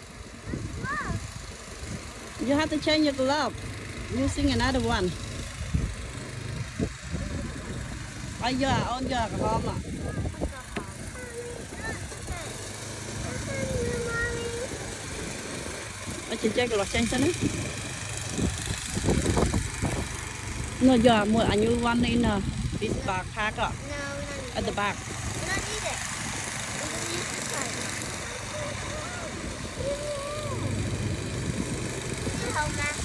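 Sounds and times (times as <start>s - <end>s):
child's voice: 0.4s - 1.4s, 10.0s - 14.9s, 23.7s - 26.1s, 26.8s - 30.7s, 32.2s - 33.0s.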